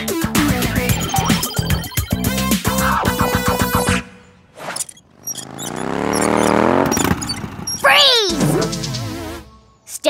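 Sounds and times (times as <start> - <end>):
upbeat dance music: 0.0 - 3.2.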